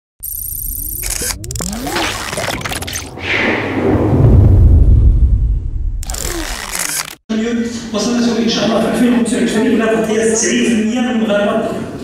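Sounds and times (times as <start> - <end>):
sharp clicks: 0.2 - 3.0, 6.0 - 7.2
high electronic warble: 0.2 - 4.2, 6.0 - 7.2
low rumble: 3.0 - 6.4.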